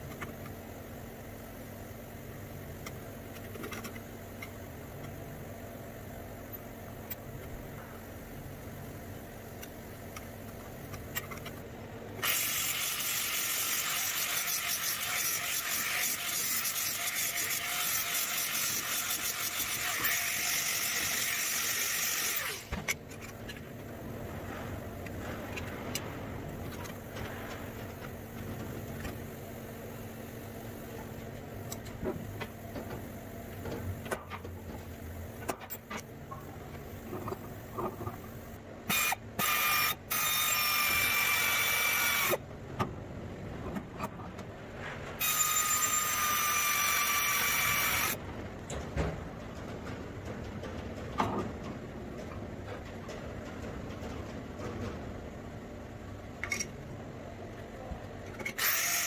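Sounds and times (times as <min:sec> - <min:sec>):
die grinder on steel: 0:12.2 - 0:22.7
electric drill boring into steel: 0:12.2 - 0:22.7, 0:38.9 - 0:42.4, 0:45.2 - 0:48.2, 0:58.6 - 0:59.0.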